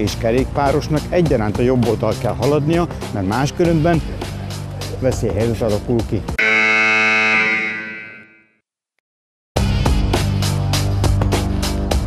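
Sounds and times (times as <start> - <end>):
wrong-answer buzzer: 6.4 - 8.5.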